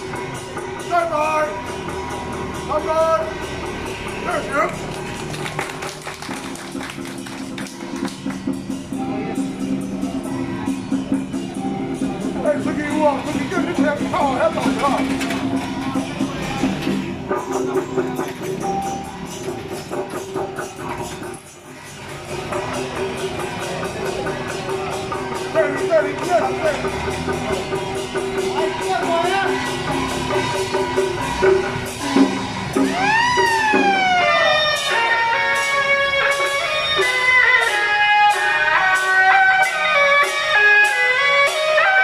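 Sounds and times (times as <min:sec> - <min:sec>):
rapid percussion: 0:00.0 - 0:42.0
voices calling out: 0:08.3 - 0:42.0.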